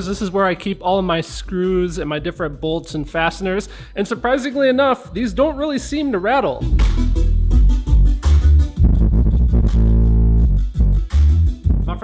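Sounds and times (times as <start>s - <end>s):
bass-heavy music: 0.0s - 12.0s.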